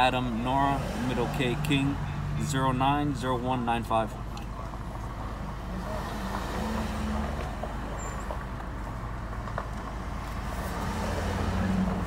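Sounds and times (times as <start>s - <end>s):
car engine idling: 0.0s - 10.4s.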